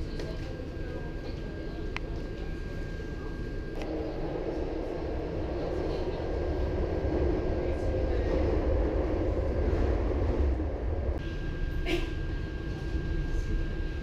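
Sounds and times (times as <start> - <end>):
train running rumble: 3.7 - 11.2.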